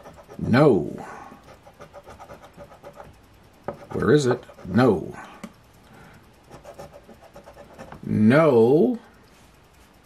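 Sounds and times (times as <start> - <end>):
lottery ticket being scratched: 0.0 - 0.8, 1.4 - 3.2, 3.8 - 5.1, 6.5 - 8.1.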